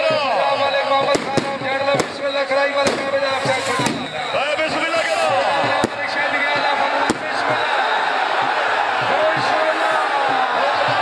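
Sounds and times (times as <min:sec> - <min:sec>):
sharp cracks: 0:01.2 - 0:04.3.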